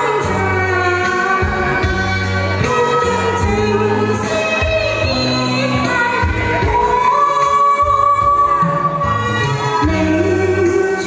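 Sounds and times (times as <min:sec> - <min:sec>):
accompaniment music: 0:00.0 - 0:11.0
woman singing into microphone: 0:00.0 - 0:11.0.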